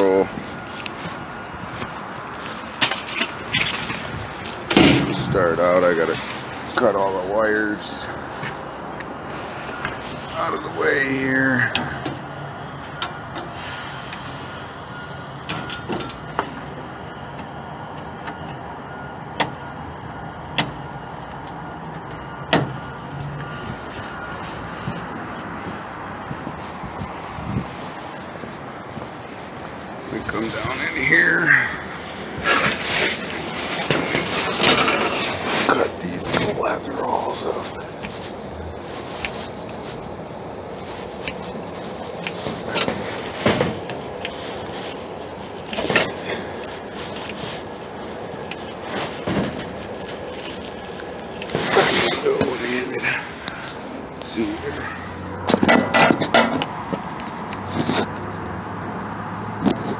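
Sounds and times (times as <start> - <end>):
rustling and knocking of handling: 38.0 - 52.7, 55.4 - 58.3.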